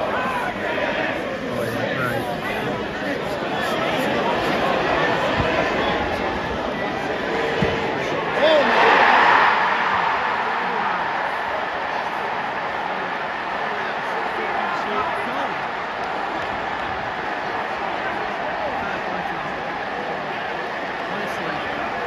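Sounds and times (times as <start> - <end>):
stadium crowd cheering: 0.0 - 22.0.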